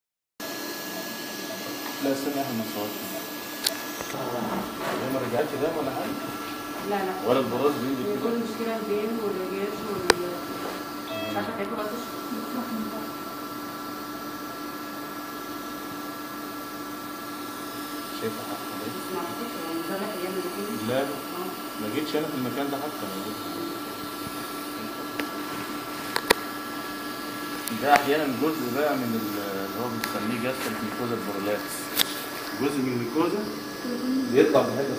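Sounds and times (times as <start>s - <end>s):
machine whirring with high whine: 0.4s - 34.9s.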